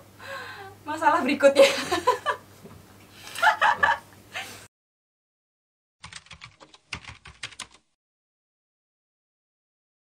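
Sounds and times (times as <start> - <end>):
woman laughing: 1.5 - 2.4, 3.3 - 4.6.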